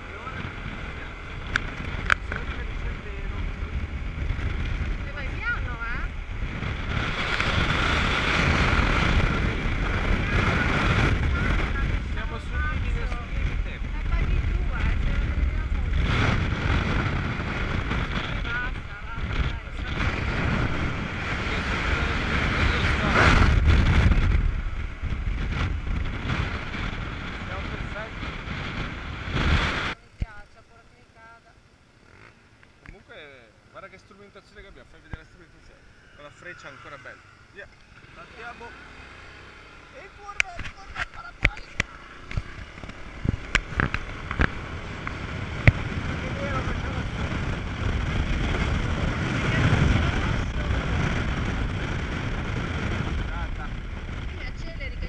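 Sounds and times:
wind buffeting microphone: 0.0s - 30.4s, 38.8s - 55.0s
scooter engine and road noise: 0.0s - 55.0s.

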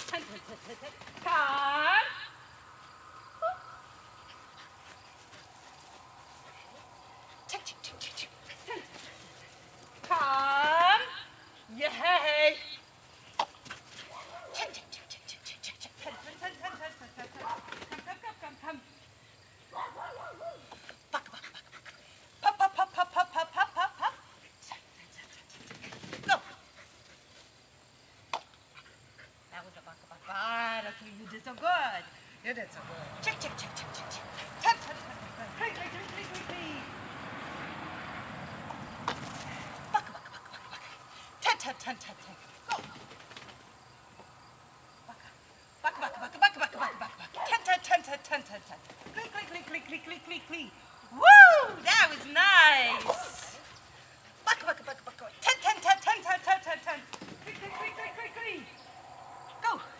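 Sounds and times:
dog barking and yipping: 19.7s - 20.7s, 57.6s - 58.2s.

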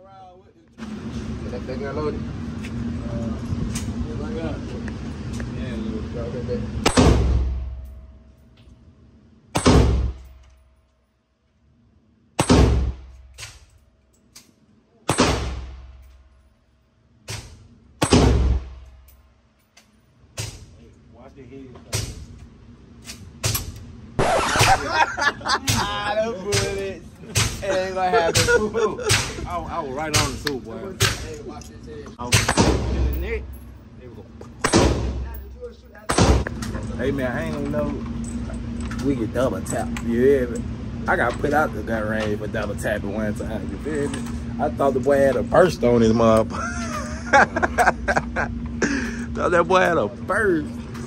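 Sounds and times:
gunshots with booming echo: 6.8s - 7.8s, 9.5s - 10.3s, 12.4s - 13.6s, 15.1s - 16.0s, 17.3s - 18.8s, 32.3s - 33.2s, 34.6s - 35.3s, 36.1s - 36.6s.

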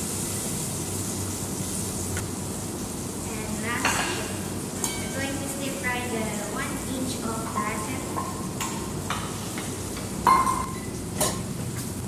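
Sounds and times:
tomatoes sizzling in a saucepan: 0.0s - 12.0s.

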